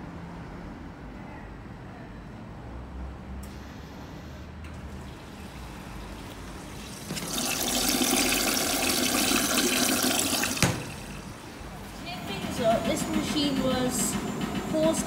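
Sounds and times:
washing machine hum: 4.7 - 15.0
water rushing in drum: 6.8 - 11.5.

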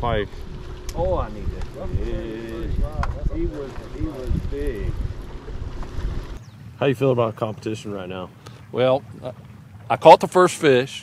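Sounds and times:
wind buffeting microphone: 0.0 - 6.9.

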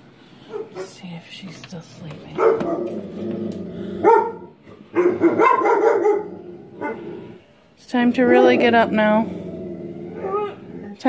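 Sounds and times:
dog barking indoors: 0.4 - 1.0, 2.3 - 7.4.

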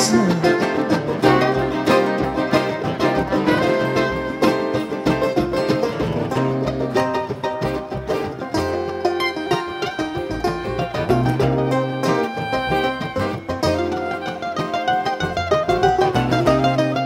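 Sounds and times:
acoustic guitar strumming: 0.0 - 17.0
bass notes: 0.0 - 17.0.

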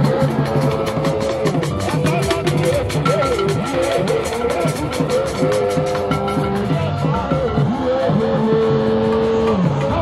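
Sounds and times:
hand drums and percussion: 0.0 - 10.0
traditional band music: 0.0 - 10.0.

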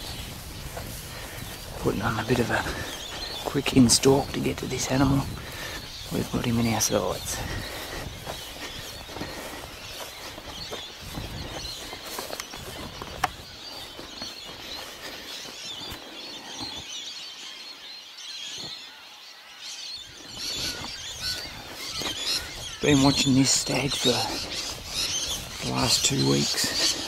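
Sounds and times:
footsteps through dry grass: 0.0 - 17.3, 19.9 - 27.0
faint birdsong: 0.0 - 27.0.

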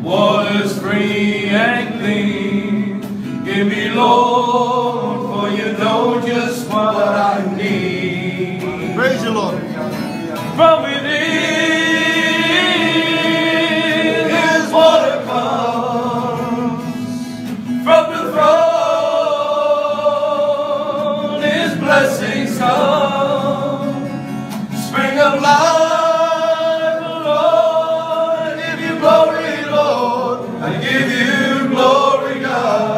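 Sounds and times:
men singing a hymn unaccompanied: 0.0 - 9.4, 10.4 - 32.9.

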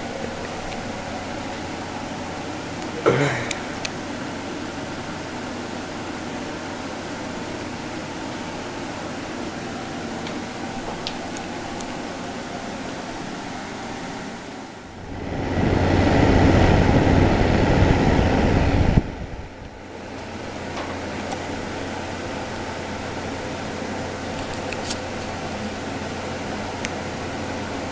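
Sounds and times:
humidifier fan rushing air: 0.0 - 27.9.

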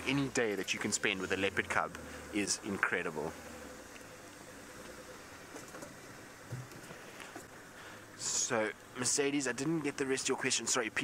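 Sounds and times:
vehicle engine driving slowly: 0.0 - 11.0.

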